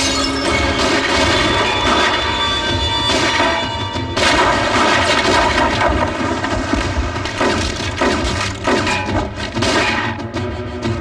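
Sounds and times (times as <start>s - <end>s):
pistol shots: 7.3s - 10.2s.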